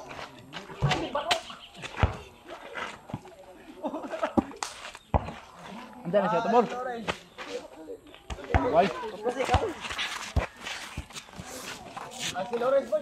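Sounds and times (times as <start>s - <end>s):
faint scattered voices: 0.0s - 13.0s.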